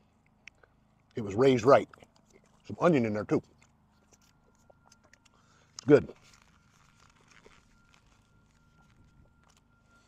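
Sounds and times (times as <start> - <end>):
faint chewing: 0.0 - 1.2, 1.8 - 2.8, 3.4 - 10.0
faint steady high tone: 2.6 - 10.0.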